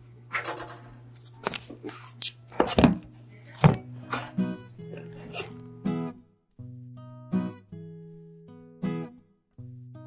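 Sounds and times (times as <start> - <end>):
knocks of food preparation: 2.5 - 4.4
plucked guitar music: 3.7 - 10.0.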